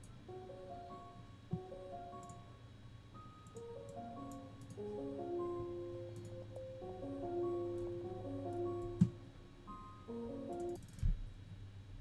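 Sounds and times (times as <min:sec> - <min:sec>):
piano melody and chords: 0:00.0 - 0:10.9.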